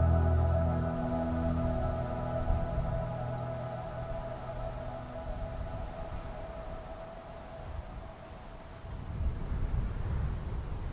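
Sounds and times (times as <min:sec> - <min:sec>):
low rumbling drone: 0:00.0 - 0:08.3
sustained tone: 0:00.0 - 0:09.0.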